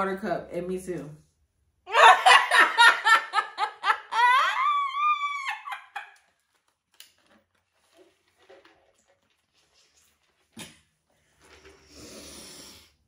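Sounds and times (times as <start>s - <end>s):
woman laughing and squealing: 1.9s - 6.2s.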